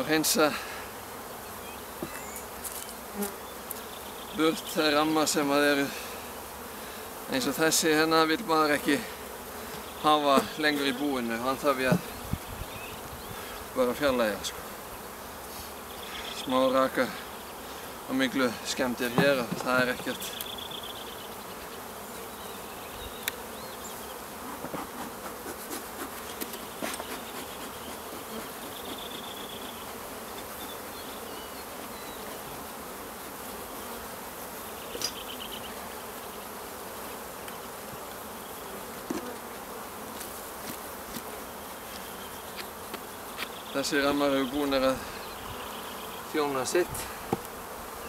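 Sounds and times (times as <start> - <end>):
bees buzzing: 0.0 - 48.0.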